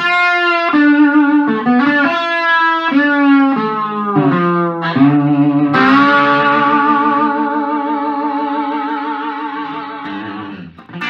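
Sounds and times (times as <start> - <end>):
electric guitar note with vibrato: 4.2 - 9.1.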